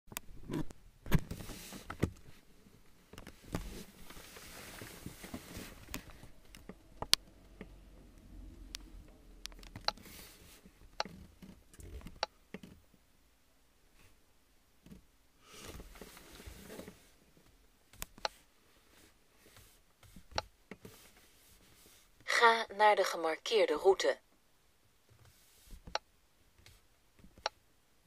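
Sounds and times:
rustling: 0:00.5 - 0:06.8.

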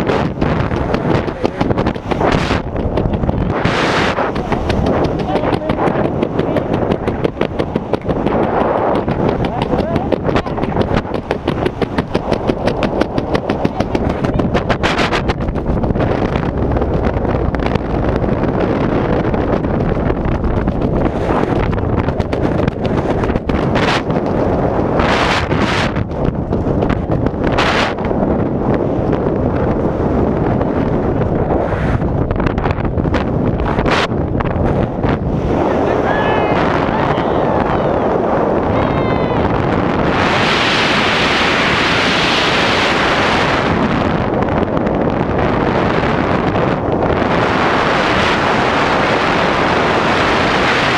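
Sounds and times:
wind rushing over microphone: 0:00.0 - 0:50.9.

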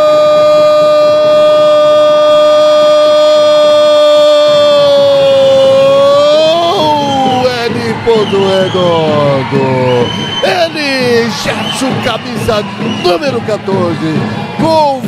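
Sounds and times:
commentator shouting goal: 0:00.0 - 0:15.0.

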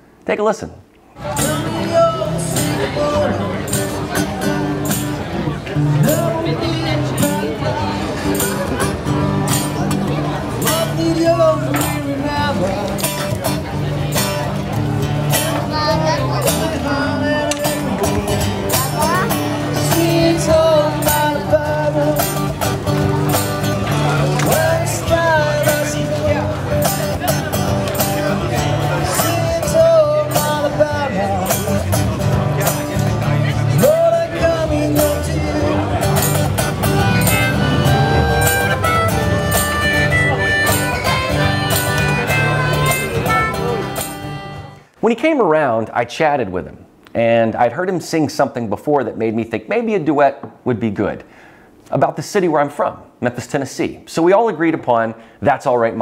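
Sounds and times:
man singing: 0:01.2 - 0:04.8, 0:05.8 - 0:08.3, 0:10.2 - 0:13.4, 0:15.3 - 0:22.8, 0:23.8 - 0:27.5, 0:28.3 - 0:38.1
strummed acoustic guitar: 0:01.2 - 0:44.9.

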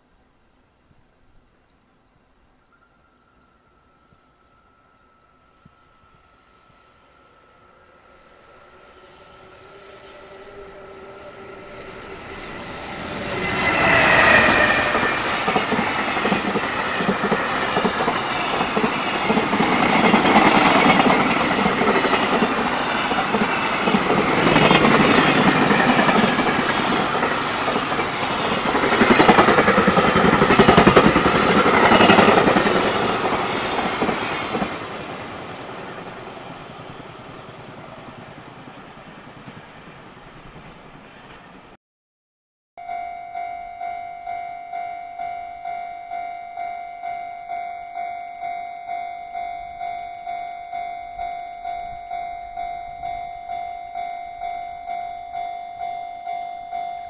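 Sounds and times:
locomotive tones: 0:01.5 - 0:39.7, 0:42.8 - 0:57.0
train wheels clattering on rails: 0:11.8 - 0:36.1.

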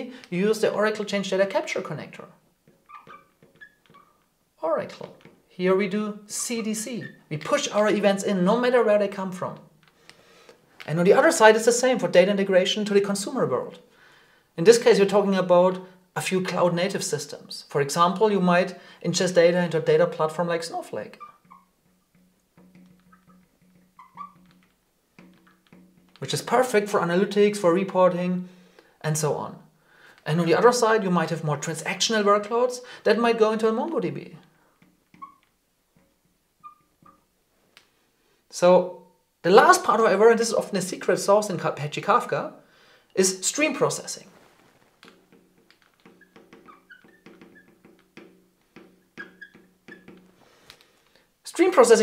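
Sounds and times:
marker squeaking on glass: 0:02.6 - 0:04.3, 0:06.3 - 0:07.9, 0:20.8 - 0:26.2, 0:34.8 - 0:37.3, 0:44.3 - 0:50.4.

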